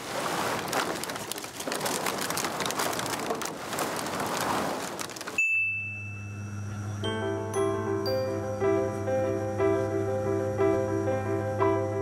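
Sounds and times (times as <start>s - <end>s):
plastic bottles crackling underfoot: 0.0s - 5.4s
brief high tone: 5.4s - 9.1s
steady low hum: 5.6s - 12.0s.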